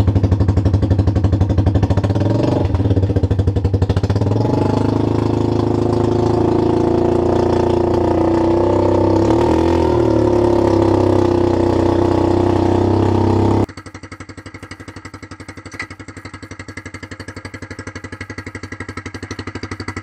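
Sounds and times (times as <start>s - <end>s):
golf cart gas engine running: 4.3s - 13.8s.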